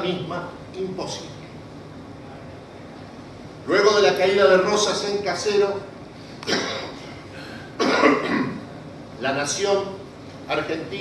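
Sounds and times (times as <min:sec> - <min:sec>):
man coughing: 0:06.5 - 0:08.6.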